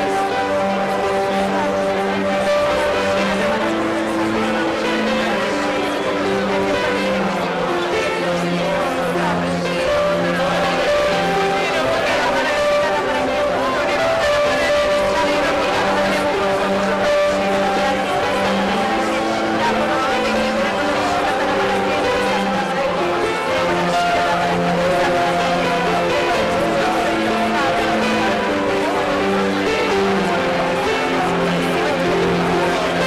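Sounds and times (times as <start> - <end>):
band playing: 0.0 - 33.0
electric guitar accompaniment: 0.0 - 33.0
singers holding long notes: 0.0 - 33.0.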